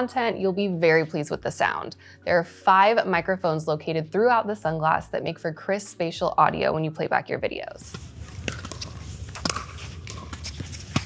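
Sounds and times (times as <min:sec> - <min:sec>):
footsteps on hard court: 0:07.9 - 0:11.0
tennis balls struck by rackets: 0:07.9 - 0:11.0.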